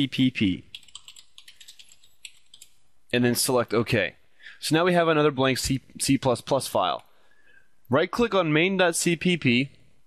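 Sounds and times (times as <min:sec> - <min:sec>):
faint keyboard typing: 0:00.7 - 0:02.8.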